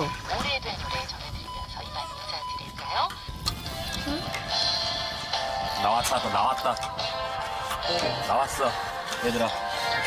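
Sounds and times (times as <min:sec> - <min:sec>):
radio music: 0:00.0 - 0:04.3
broadcast voices: 0:00.0 - 0:04.6, 0:05.2 - 0:10.0.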